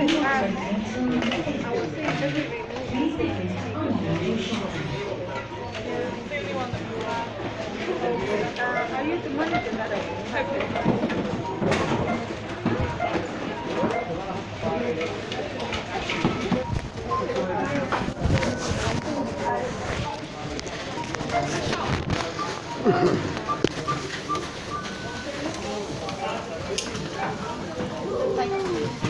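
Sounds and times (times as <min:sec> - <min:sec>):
indistinct voices talking: 0:00.0 - 0:29.0.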